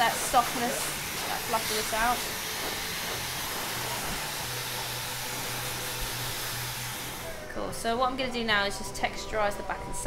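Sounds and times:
hair dryer blowing: 0.0s - 7.5s.

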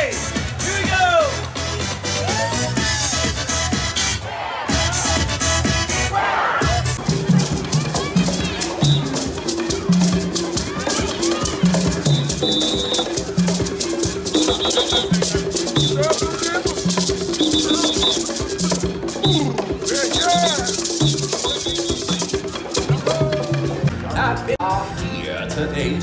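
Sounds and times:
voices calling out: 0.0s - 24.6s
wooden hand drums: 6.7s - 24.2s
shaker: 7.0s - 23.9s.

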